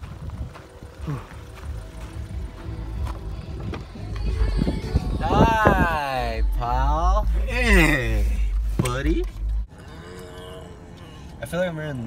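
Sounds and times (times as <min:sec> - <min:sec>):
wind rumbling on microphone: 0:00.0 - 0:07.5
faint music: 0:00.0 - 0:09.7.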